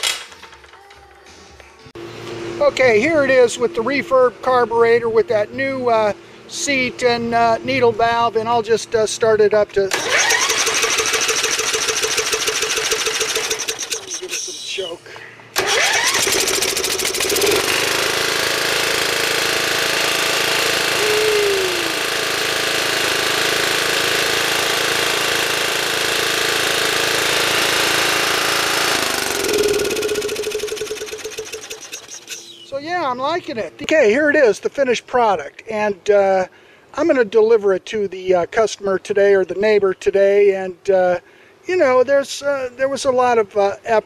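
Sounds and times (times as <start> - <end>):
electric starter cranking: 9.8 - 14.5, 15.5 - 32.7
mower engine running: 9.8 - 14.5, 15.5 - 33.2.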